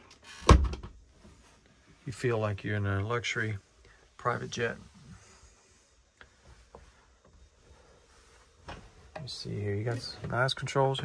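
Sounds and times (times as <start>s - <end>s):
door thud: 0.4s - 1.0s.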